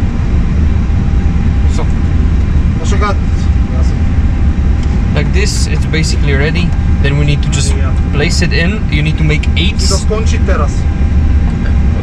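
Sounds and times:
loud low rumble: 0.0 - 12.0.

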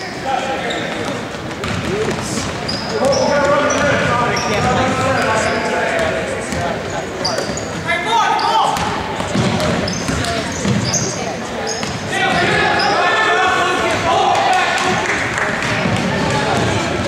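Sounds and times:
sneaker squeaks: 0.0 - 13.2
basketball dribbling on wood floor: 1.5 - 3.2.

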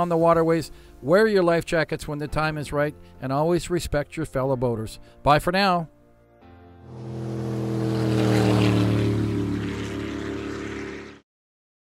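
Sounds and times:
rushing water noise: 6.9 - 11.1
powerboat engines passing: 6.9 - 11.2.

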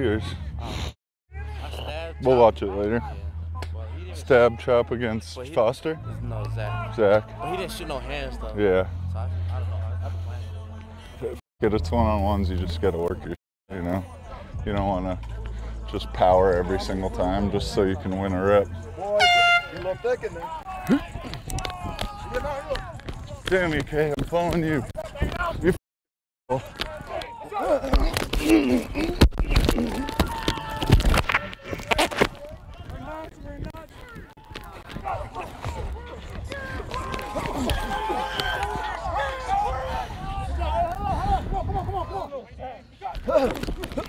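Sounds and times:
air horn blast: 19.2 - 20.1
people shouting over one another: 34.9 - 41.7.

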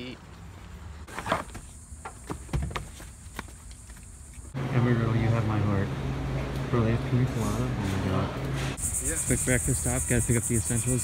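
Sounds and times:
steady low hum: 1.6 - 11.0.

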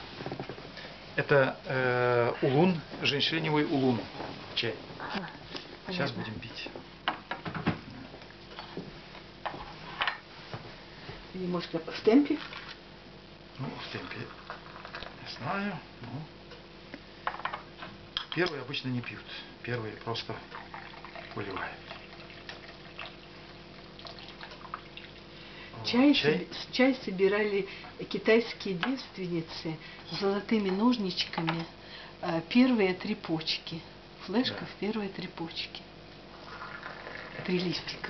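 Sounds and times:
tea pouring from teapot: 20.5 - 25.2, 36.4 - 37.7.

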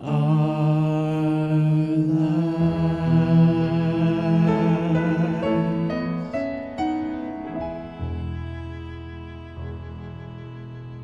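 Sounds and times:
choir singing a hymn: 0.0 - 7.7
piano: 0.0 - 11.0
string ensemble: 0.0 - 11.0.

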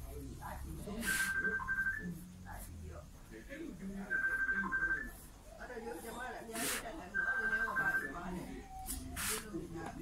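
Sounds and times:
background voices talking: 0.0 - 10.0.

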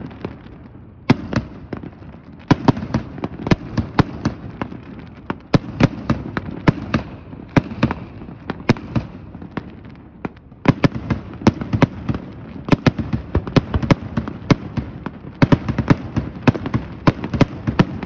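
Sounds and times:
fireworks bursting: 0.0 - 18.0.

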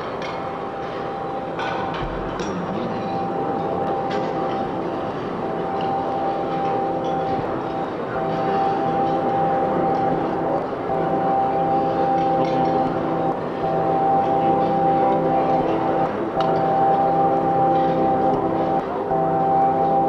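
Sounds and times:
sustained drone tones: 0.0 - 20.0.

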